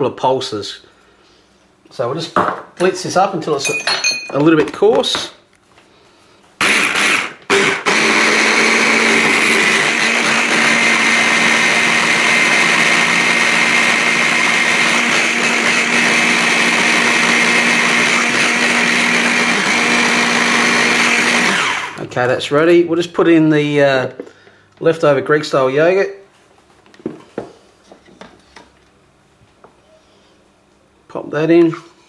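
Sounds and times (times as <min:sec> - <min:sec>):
electric blender whining: 0:06.6 - 0:22.1.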